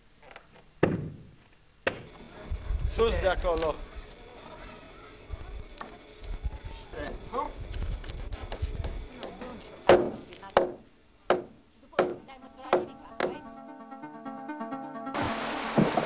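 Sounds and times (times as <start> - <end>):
faint voices: 2.2 - 11.1.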